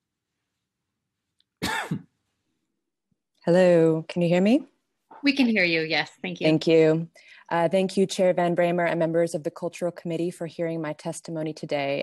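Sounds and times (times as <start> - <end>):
person clearing throat: 1.6 - 2.1.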